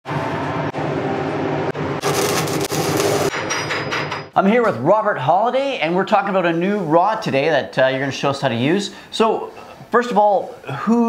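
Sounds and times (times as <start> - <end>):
welding arc crackling and hissing: 2.0 - 3.3.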